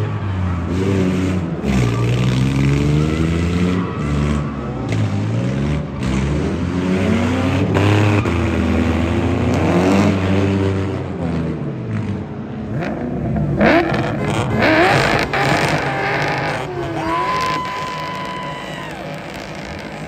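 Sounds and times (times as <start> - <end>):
tires squealing: 0.0 - 10.6, 13.6 - 20.0
car engines revving: 0.0 - 20.0.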